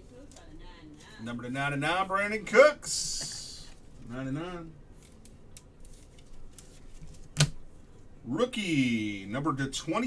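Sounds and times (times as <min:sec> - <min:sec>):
cards and plastic holders handled: 0:05.0 - 0:07.6.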